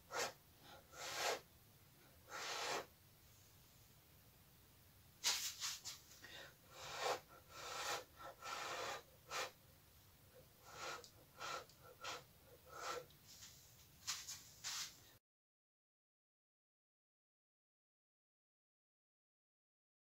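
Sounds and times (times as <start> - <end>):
puffs of breath: 2.3 - 2.9, 6.2 - 9.6, 10.6 - 13.1.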